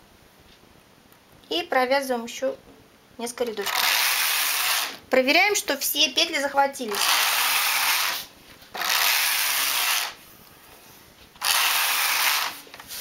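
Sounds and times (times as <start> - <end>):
knitting machine carriage sliding: 3.6 - 5.0, 6.9 - 10.2, 11.4 - 13.0.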